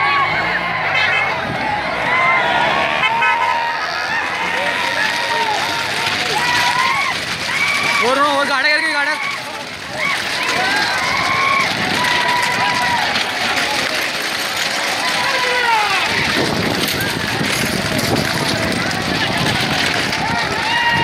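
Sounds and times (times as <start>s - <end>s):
cart wheels rumbling: 0.0s - 21.0s
spectators shouting: 0.0s - 21.0s
pounding hooves: 1.0s - 21.0s.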